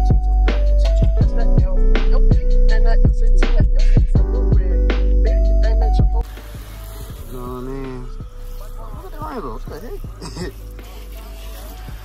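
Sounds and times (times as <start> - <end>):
hose spraying water on car: 6.2 - 12.0
person laughing: 10.2 - 10.7.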